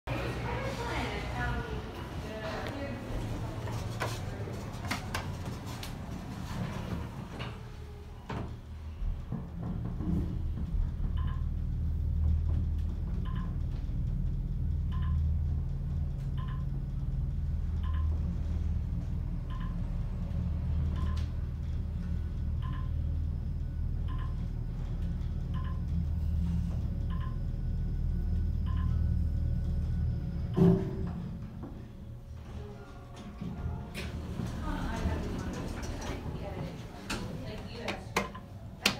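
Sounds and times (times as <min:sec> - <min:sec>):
elevator humming: 0:00.1 - 0:38.9
elevator car thump: 0:30.4 - 0:31.6.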